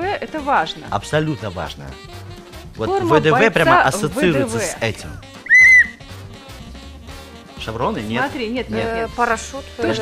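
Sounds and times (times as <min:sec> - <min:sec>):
quiet background music: 0:00.0 - 0:10.0
short loud whistle tone: 0:05.4 - 0:06.0.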